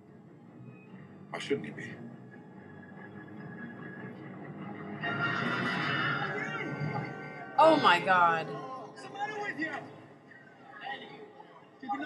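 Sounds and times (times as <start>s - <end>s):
tv drama audio: 0.0s - 12.0s.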